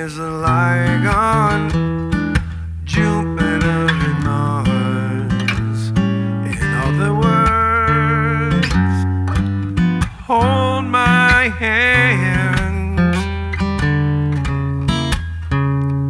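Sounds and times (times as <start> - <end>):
man singing: 0.0 - 1.8, 2.9 - 9.1, 10.1 - 13.4
acoustic guitar: 0.0 - 16.0.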